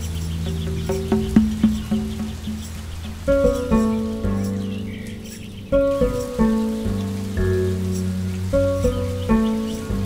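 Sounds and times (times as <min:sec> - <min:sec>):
plucked strings music: 0:00.0 - 0:10.0.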